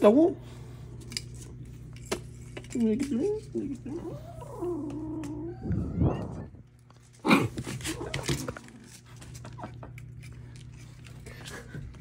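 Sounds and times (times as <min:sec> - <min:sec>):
kitten growling: 0:03.9 - 0:08.6.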